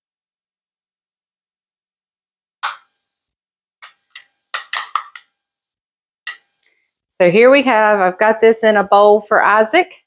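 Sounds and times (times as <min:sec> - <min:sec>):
spoon clinking glass bowl: 0:03.8 - 0:05.3, 0:06.3 - 0:06.5.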